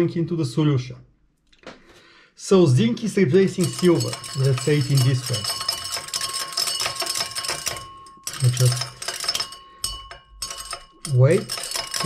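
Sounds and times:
granules clinking against glass: 0:03.5 - 0:12.0.

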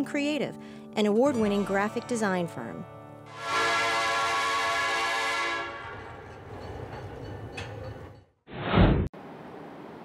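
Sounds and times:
train whistle blast: 0:03.3 - 0:06.0.

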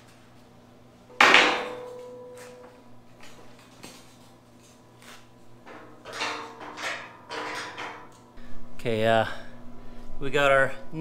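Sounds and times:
metal knocks and clanks: 0:01.1 - 0:02.7, 0:05.6 - 0:08.3
steel frame clanging: 0:01.1 - 0:02.8, 0:05.6 - 0:08.3.

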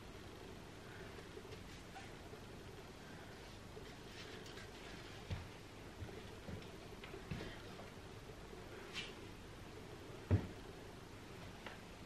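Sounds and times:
footsteps on yoga mat: 0:05.2 - 0:07.7.

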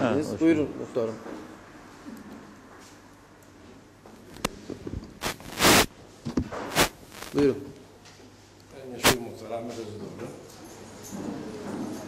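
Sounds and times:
microphone handling rustling: 0:04.9 - 0:05.9, 0:06.7 - 0:07.4
microphone click: 0:05.2 - 0:05.9, 0:06.7 - 0:07.4.

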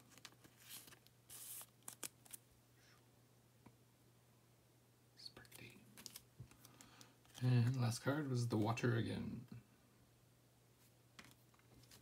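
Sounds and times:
trading cards flipping and sliding: 0:00.0 - 0:02.4, 0:05.5 - 0:07.8, 0:11.2 - 0:12.0.

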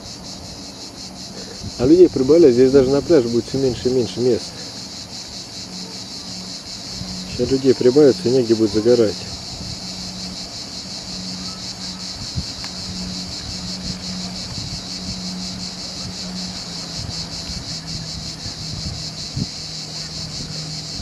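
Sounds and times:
cicadas singing: 0:00.0 - 0:21.0
wind buffeting microphone: 0:00.0 - 0:21.0.

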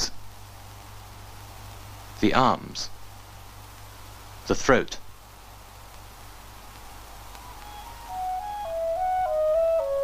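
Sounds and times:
old film soundtrack hum and hiss: 0:00.0 - 0:10.0
solo flute melody: 0:07.5 - 0:10.0.

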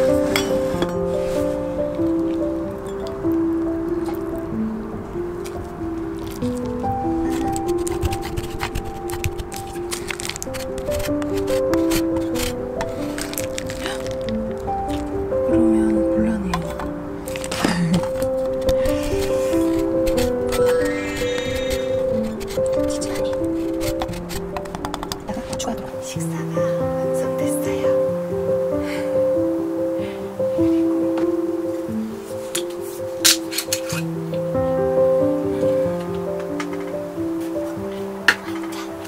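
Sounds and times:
light melody of held notes: 0:00.0 - 0:39.0
clicks and scrapes: 0:06.2 - 0:14.4, 0:16.7 - 0:25.5.

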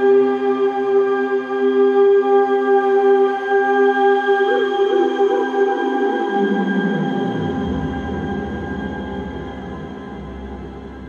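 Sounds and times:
electronic synthesizer drone: 0:04.4 - 0:11.0.

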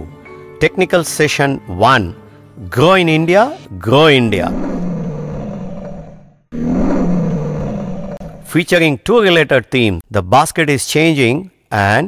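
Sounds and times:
lion roaring: 0:04.3 - 0:08.5.

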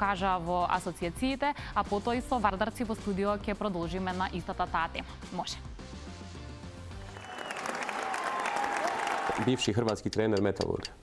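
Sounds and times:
applause: 0:07.0 - 0:09.8.

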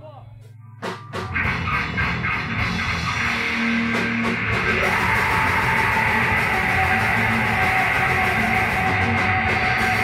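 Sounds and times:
distorted electric guitars: 0:00.4 - 0:10.0
extreme metal music: 0:00.8 - 0:10.0.

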